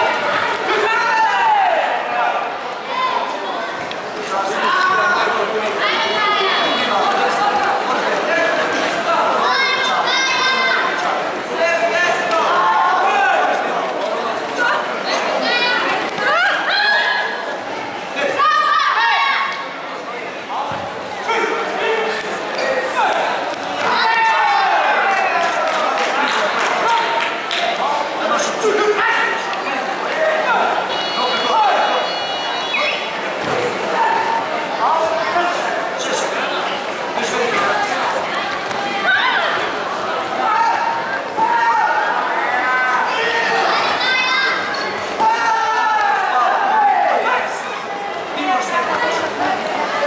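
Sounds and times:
voices shouting in echoing hall: 0:00.0 - 0:50.0.

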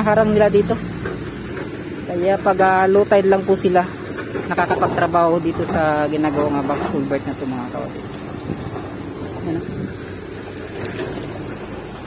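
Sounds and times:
excavator diesel engines running: 0:00.0 - 0:12.0.

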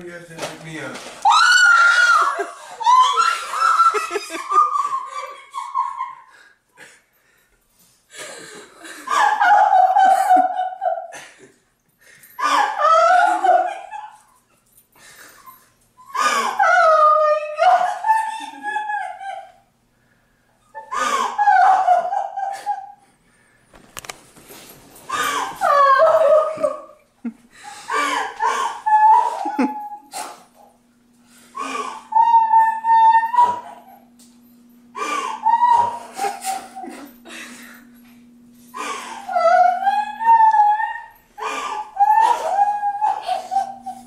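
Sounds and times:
high-pitched whining cries: 0:01.2 - 0:06.1, 0:12.4 - 0:14.3, 0:16.0 - 0:19.7, 0:20.6 - 0:23.0, 0:25.1 - 0:27.0, 0:27.9 - 0:44.0
dog whimpering: 0:20.6 - 0:22.9, 0:25.2 - 0:27.0, 0:28.2 - 0:30.3, 0:31.6 - 0:34.2, 0:35.0 - 0:36.9, 0:38.8 - 0:44.0
sobbing breath: 0:27.5 - 0:30.5, 0:31.3 - 0:32.2, 0:34.9 - 0:38.0, 0:38.6 - 0:39.3, 0:41.0 - 0:42.6.

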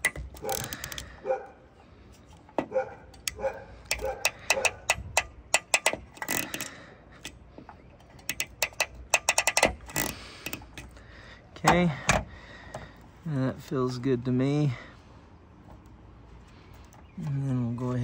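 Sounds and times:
ratcheting wire crimper clicking: 0:00.0 - 0:01.1, 0:03.1 - 0:07.4, 0:08.0 - 0:11.0.

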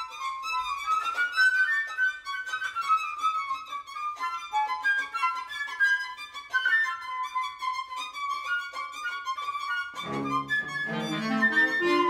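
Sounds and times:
chamber music ensemble: 0:00.0 - 0:12.0
violin bowing: 0:00.0 - 0:12.0.

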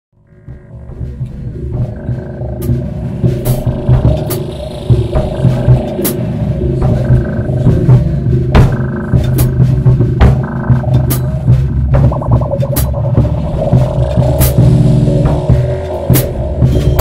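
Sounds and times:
slap bass line: 0:00.2 - 0:17.0
rock drum beat: 0:00.4 - 0:17.0.

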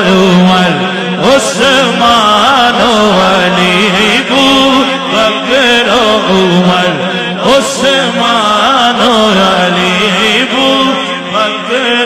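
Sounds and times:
man chanting into a microphone: 0:00.0 - 0:12.0.

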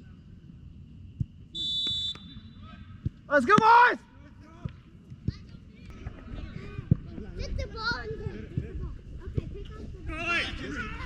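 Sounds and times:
players calling and shouting: 0:01.5 - 0:11.0.

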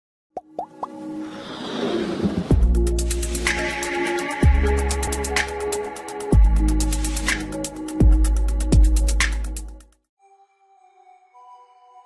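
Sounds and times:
rising plopping pops: 0:00.4 - 0:01.0.

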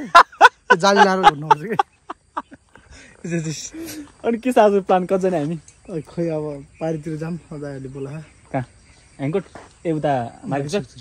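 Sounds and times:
insect chirring: 0:00.0 - 0:11.0
men speaking: 0:00.0 - 0:11.0.

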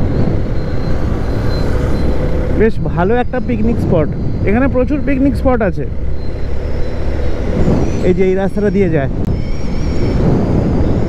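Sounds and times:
motorcycle engine: 0:00.0 - 0:08.6
road noise: 0:00.0 - 0:11.0
wind buffeting microphone: 0:00.0 - 0:11.0.

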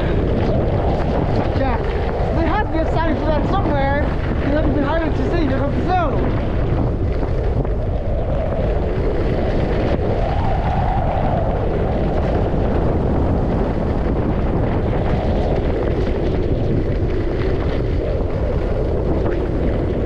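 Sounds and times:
skis sliding over snow: 0:00.0 - 0:20.0
wind rushing over microphone: 0:00.0 - 0:20.0.

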